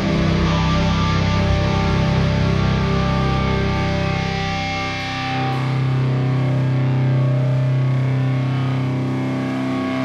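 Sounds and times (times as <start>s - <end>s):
bass guitar: 0.0s - 10.0s
distorted electric guitar chord: 0.0s - 10.0s.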